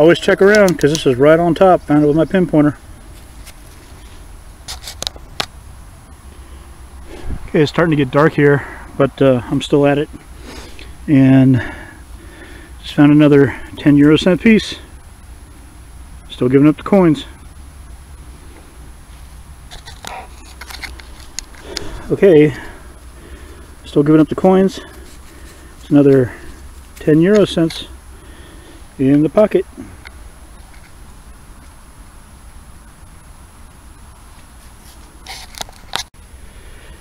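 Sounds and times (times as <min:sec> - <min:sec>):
low steady rumble: 0:00.0 - 0:35.2
scratchy rustles and clicks: 0:03.1 - 0:05.5, 0:19.1 - 0:22.8, 0:24.3 - 0:27.8, 0:34.3 - 0:36.1.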